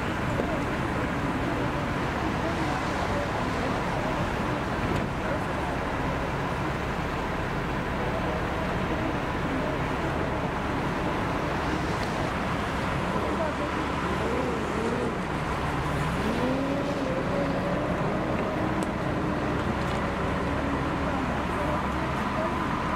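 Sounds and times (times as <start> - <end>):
military vehicle engines: 0.0 - 22.9
traffic noise: 0.0 - 22.9.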